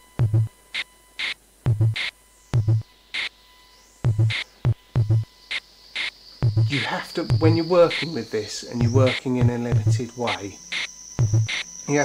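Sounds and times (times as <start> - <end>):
electronic drum pattern: 0.0 - 0.5, 1.2 - 3.3, 4.0 - 12.0
high synth tone gliding: 6.4 - 12.0.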